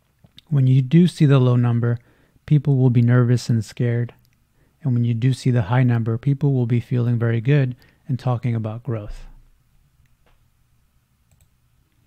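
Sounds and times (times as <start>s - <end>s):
faint computer mouse clicks: 11.3s - 12.0s.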